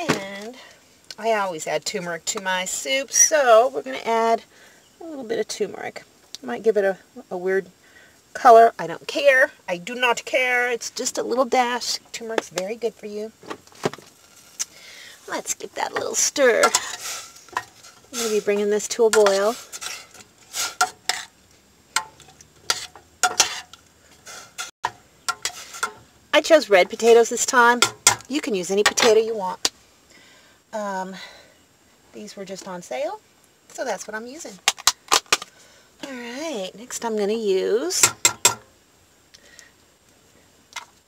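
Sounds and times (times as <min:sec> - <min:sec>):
utensil clinking and scraping pot: 0:15.3 - 0:29.3
utensil clinking on steel pot: 0:16.6 - 0:18.4, 0:22.0 - 0:23.8, 0:24.6 - 0:26.0.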